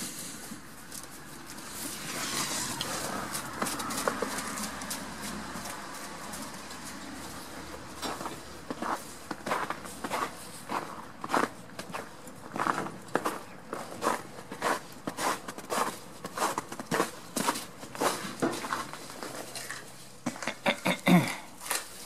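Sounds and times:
footsteps crunching through snow: 1.4s - 19.8s.

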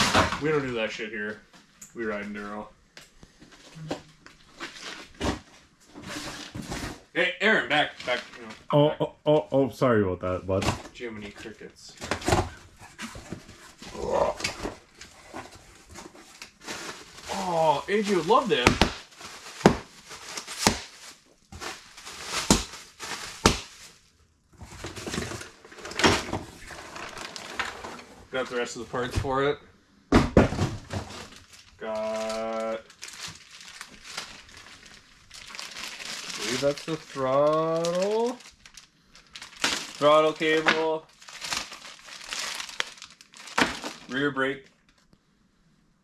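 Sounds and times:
plastic wrap crinkling: 7.8s - 8.6s, 12.0s - 28.8s, 30.8s - 45.1s.

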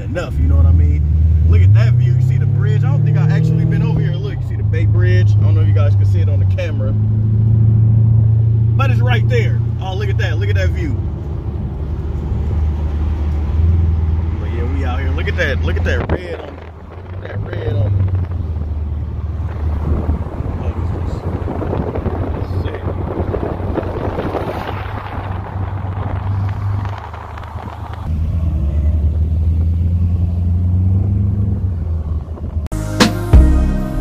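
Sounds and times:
road and wind noise: 0.0s - 32.7s
car engine hum: 0.0s - 34.0s
music: 32.7s - 34.0s.

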